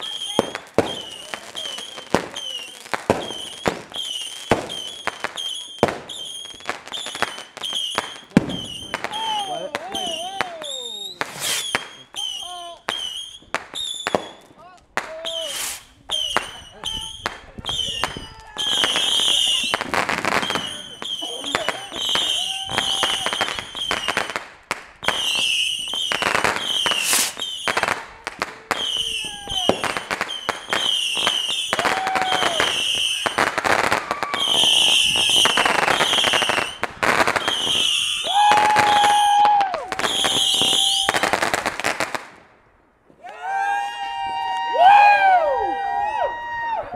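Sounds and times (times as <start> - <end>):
fireworks bangs and crackling: 0.0 - 43.2.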